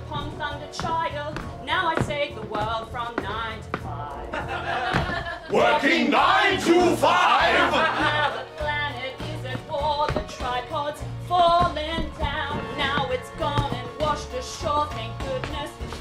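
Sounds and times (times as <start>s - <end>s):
instrumental accompaniment: 0.0s - 16.0s
cast singing show tune: 5.5s - 11.6s.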